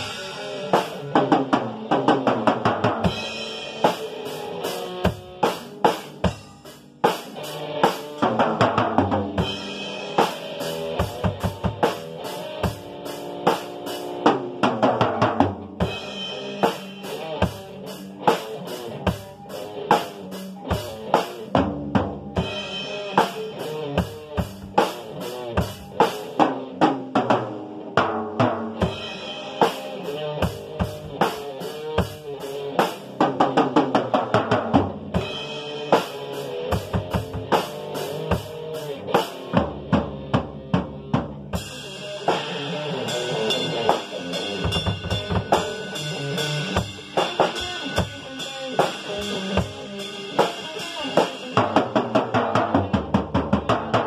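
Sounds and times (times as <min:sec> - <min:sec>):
drum kit groove: 0:00.0 - 0:54.0.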